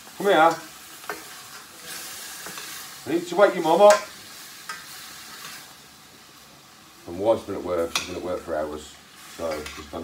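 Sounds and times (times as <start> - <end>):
chicken sizzling in a pan: 0.0 - 10.0.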